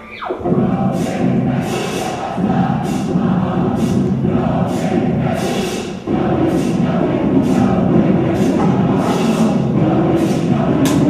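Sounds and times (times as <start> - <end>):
choir singing with accompaniment: 0.3 - 11.0.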